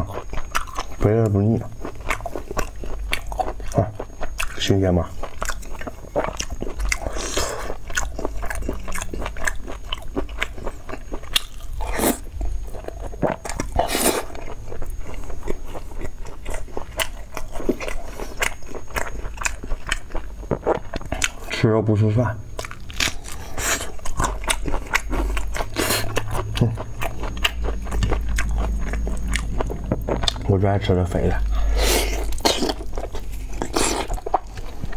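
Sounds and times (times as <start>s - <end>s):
wet chewing clicks and smacks: 0.0s - 21.6s, 22.6s - 30.5s.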